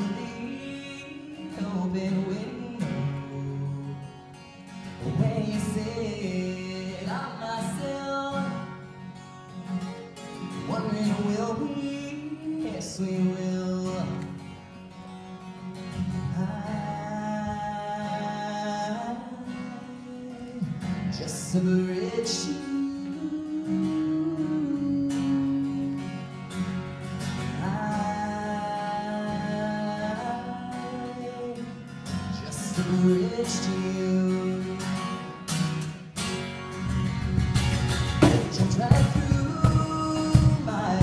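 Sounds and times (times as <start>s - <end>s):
man singing: 0.0s - 4.2s, 4.9s - 8.8s, 10.4s - 14.4s, 16.0s - 26.4s, 27.4s - 35.5s, 38.1s - 41.0s
strummed acoustic guitar: 0.0s - 41.0s
cajon hits: 36.9s - 41.0s.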